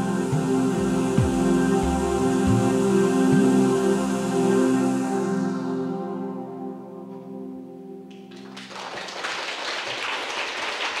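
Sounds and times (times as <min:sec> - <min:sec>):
audience applause: 0:08.1 - 0:11.0.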